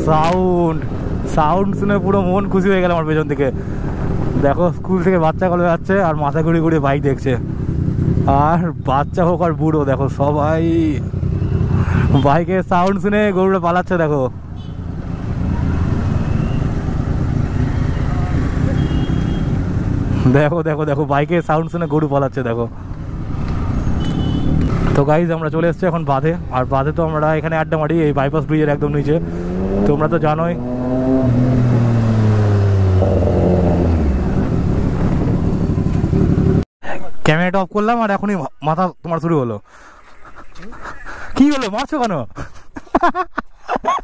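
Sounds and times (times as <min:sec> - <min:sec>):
rushing riding noise: 0:26.3 - 0:36.6
motorcycle engine running: 0:30.6 - 0:36.6.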